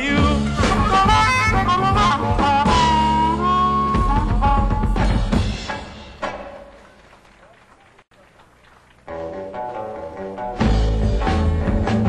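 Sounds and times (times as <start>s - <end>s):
rock band playing live: 0.0s - 6.3s, 9.1s - 12.0s.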